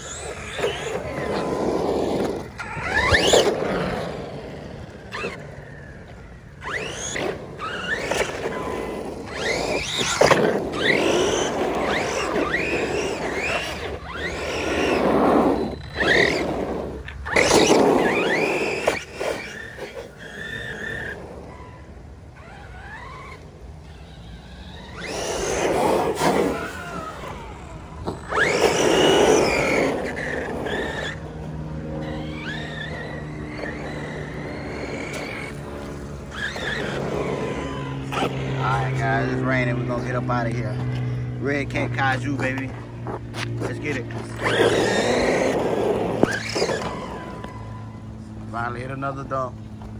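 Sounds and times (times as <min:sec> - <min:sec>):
rc truck motor whine: 0:00.0 - 0:49.9
steady low hum: 0:00.0 - 0:49.9.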